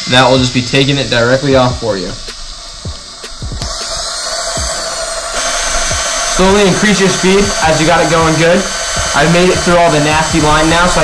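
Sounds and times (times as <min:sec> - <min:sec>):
background music with thumping beat: 0:00.2 - 0:11.0.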